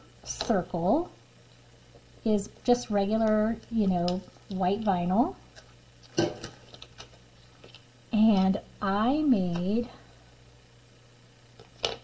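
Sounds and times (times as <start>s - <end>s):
hands handling vinyl sheet: 5.5s - 7.9s.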